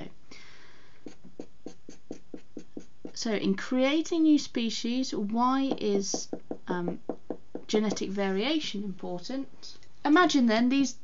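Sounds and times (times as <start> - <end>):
felt-tip marker scratching on paper: 1.0 - 3.2.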